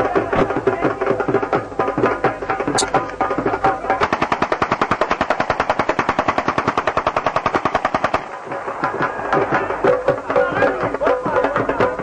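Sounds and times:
rapid sharp bangs: 3.9 - 11.8.

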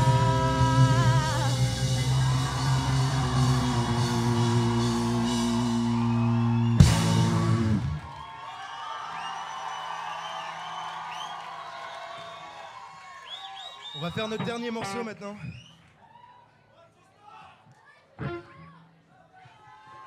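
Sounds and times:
loud sustained guitar chord: 0.0 - 7.8
drums: 0.0 - 8.1.

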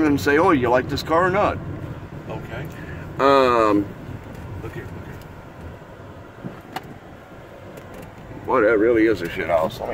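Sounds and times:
car interior rumble: 0.0 - 9.9.

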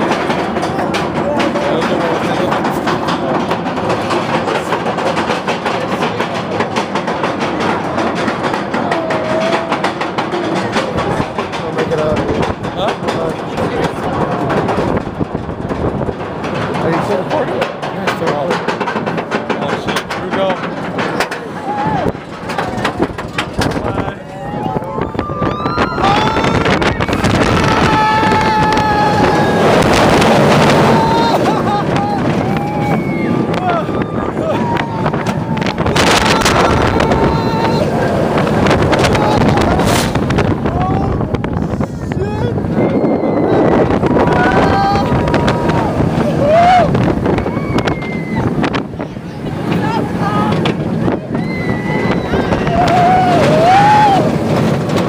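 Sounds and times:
roller coaster train rumbling: 0.0 - 55.0
wind rushing over microphone: 0.0 - 55.0
riders screaming and yelling: 8.2 - 11.2, 21.2 - 55.0.

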